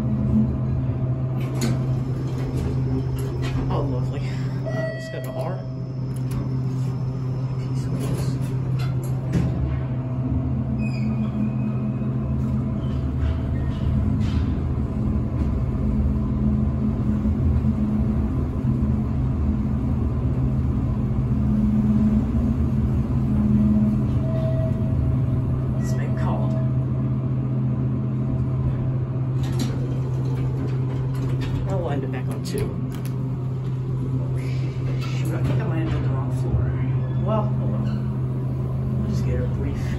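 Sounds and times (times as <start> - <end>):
elevator hum and rumble: 0.0 - 39.9.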